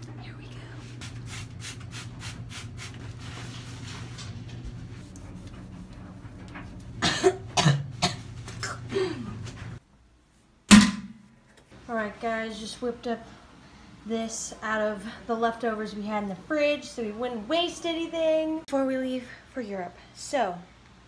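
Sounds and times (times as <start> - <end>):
steady low hum: 0.0 - 10.0
person coughing: 7.0 - 9.4.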